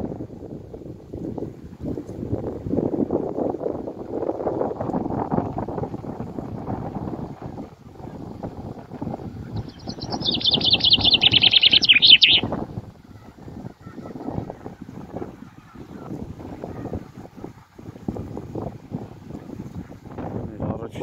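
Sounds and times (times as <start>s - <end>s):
wind buffeting microphone: 0.0s - 21.0s
small bird singing: 9.2s - 12.6s.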